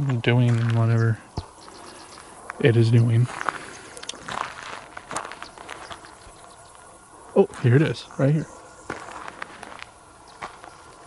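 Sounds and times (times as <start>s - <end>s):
footsteps with rustling: 0.0s - 6.8s, 8.8s - 11.0s.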